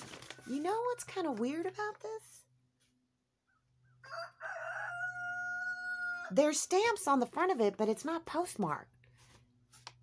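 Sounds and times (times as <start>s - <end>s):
rooster crowing: 4.0s - 6.4s.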